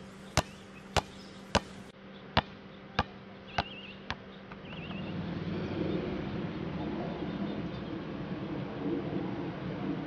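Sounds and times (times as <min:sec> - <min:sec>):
rubber ball bouncing on concrete: 0:00.4 - 0:04.8.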